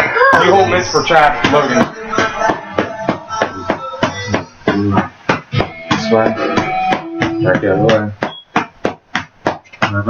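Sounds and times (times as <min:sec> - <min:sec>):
background music: 0:00.0 - 0:08.2.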